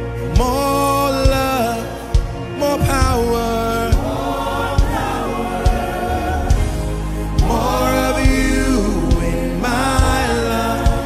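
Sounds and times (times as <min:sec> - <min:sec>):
gospel voices singing: 0:00.0 - 0:11.0
steady low beat: 0:00.0 - 0:11.0.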